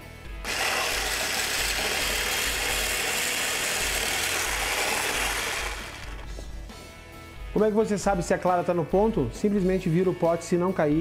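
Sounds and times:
stick blender whirring: 0:00.4 - 0:06.6.

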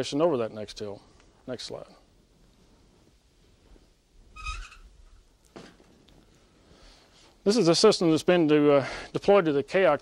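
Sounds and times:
high squeak: 0:04.3 - 0:04.9.

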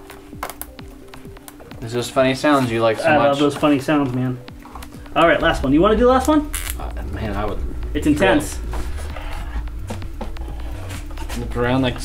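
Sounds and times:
steady low bass: 0:04.6 - 0:12.0
held synth note: 0:04.9 - 0:12.0.

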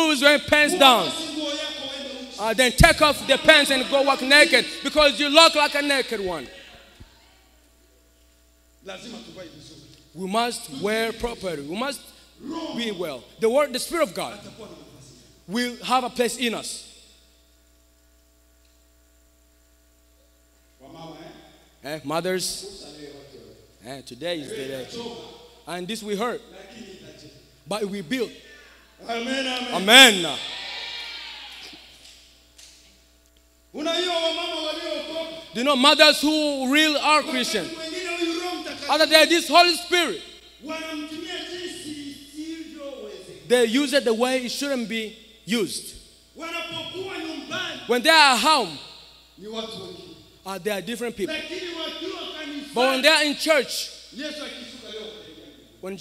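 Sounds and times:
man speaking into microphone: 0:00.0 - 0:06.5, 0:08.9 - 0:16.9, 0:20.8 - 0:28.4, 0:29.0 - 0:30.4, 0:33.8 - 0:56.0
amplified preaching voice: 0:00.0 - 0:07.0, 0:08.8 - 0:17.1, 0:20.8 - 0:30.6, 0:33.7 - 0:56.0
electrical hum: 0:00.0 - 0:56.0.

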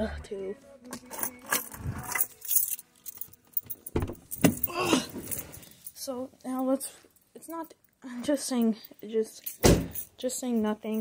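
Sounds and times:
phone handling rustles and clinks: 0:01.0 - 0:05.9.

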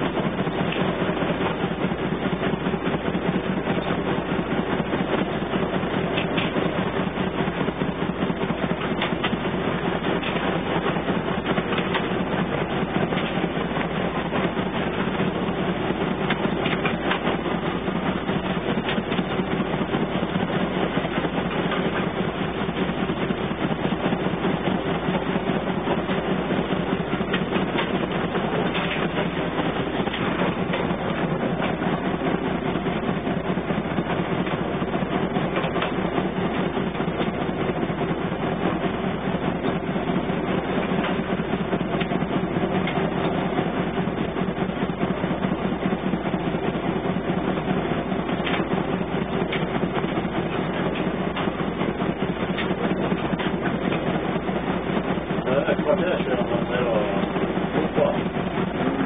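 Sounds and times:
boat diesel engine running: 0:00.0 - 0:59.0.

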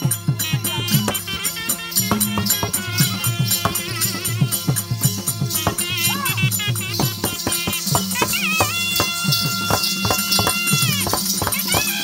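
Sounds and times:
drum strokes: 0:00.0 - 0:12.0
high nasal wind instrument note: 0:00.4 - 0:04.8.

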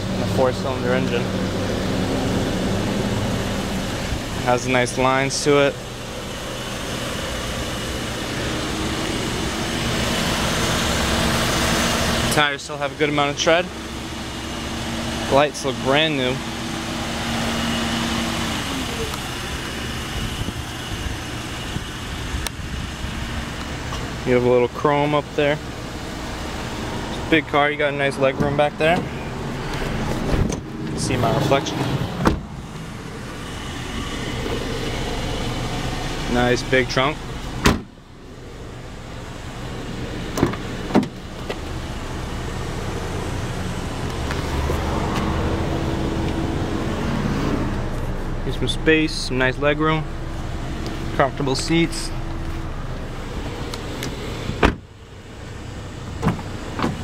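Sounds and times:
low steady rumble: 0:00.0 - 0:57.0
outdoor background noise: 0:16.4 - 0:57.0
car trunk lid slamming: 0:32.1 - 0:32.5, 0:37.6 - 0:38.0, 0:40.3 - 0:41.6, 0:54.4 - 0:54.9, 0:56.2 - 0:57.0.

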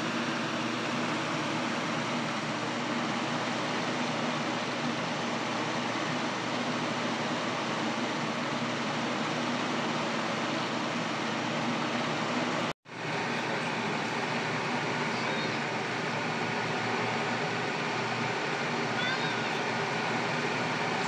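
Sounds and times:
machine hum with hiss: 0:00.0 - 0:21.0.

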